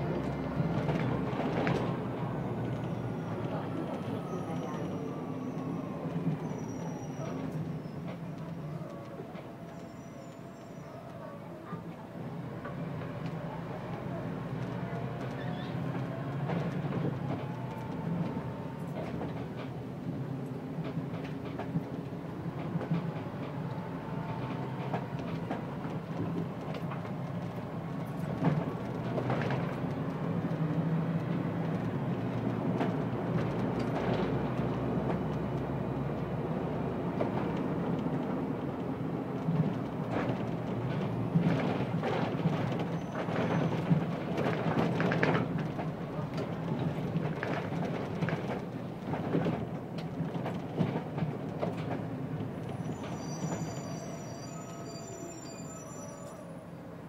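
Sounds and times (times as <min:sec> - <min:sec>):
bus engine droning: 0:00.0 - 0:57.0
road noise: 0:00.0 - 0:57.0.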